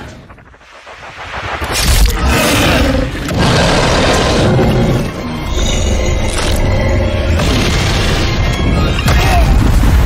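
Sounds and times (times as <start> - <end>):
low rumble: 0.0 - 7.5
dramatic music score: 0.0 - 10.0.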